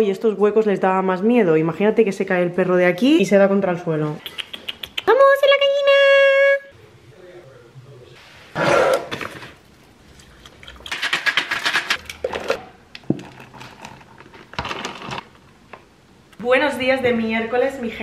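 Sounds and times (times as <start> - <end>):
coffee pouring and rattling: 9.2 - 15.5.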